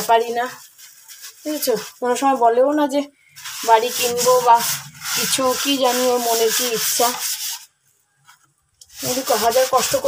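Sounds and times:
hard scrubbing on a basin: 0:00.0 - 0:07.8, 0:08.8 - 0:10.0.

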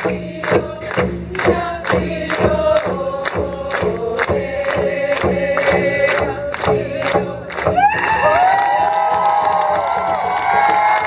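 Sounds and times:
woman singing: 0:00.0 - 0:08.2
hand drum beating: 0:00.0 - 0:11.0
crowd cheering and whooping: 0:07.7 - 0:11.0.

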